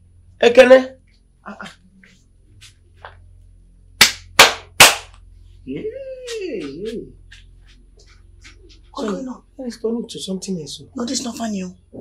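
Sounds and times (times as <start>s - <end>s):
sharp hand claps: 4.0s - 5.2s.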